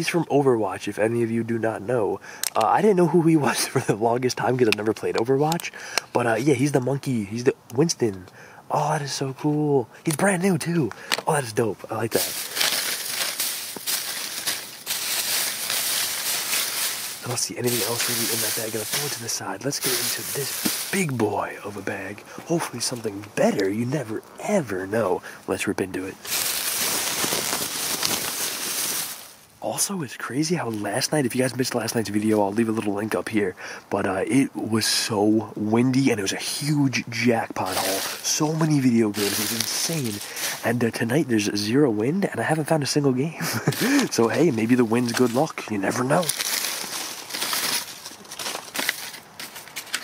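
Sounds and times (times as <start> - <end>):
plastic and paper packaging rustling: 10.6 - 24.8, 26.0 - 29.4, 37.6 - 40.8, 43.6 - 50.0
plastic bag ripping and crinkling: 12.0 - 21.3, 26.2 - 29.4, 37.6 - 38.6, 39.2 - 40.6, 43.8 - 50.0.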